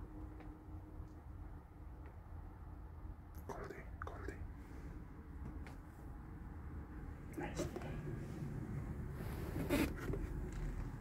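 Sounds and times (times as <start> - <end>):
low steady hum: 0.0 - 11.0
soft whispered call: 3.4 - 4.8, 7.3 - 8.2.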